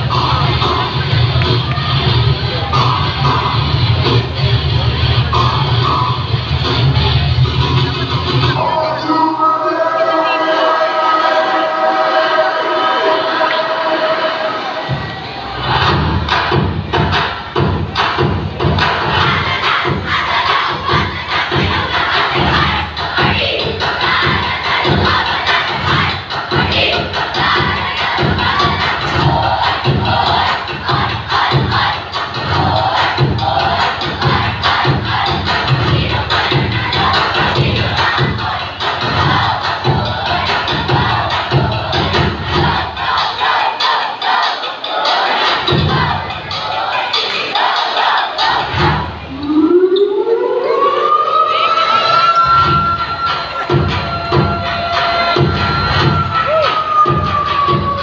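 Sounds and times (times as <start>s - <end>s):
loud music with low beat: 0.0s - 49.4s, 51.5s - 58.0s
children shouting and cheering: 18.6s - 58.0s.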